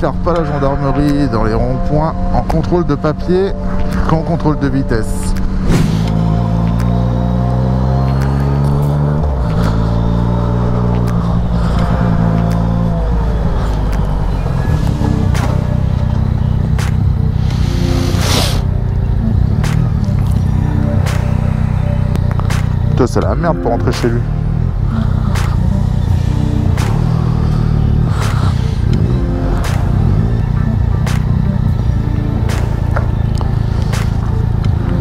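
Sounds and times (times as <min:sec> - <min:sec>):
motorcycle engine at low revs: 0:05.4 - 0:35.0.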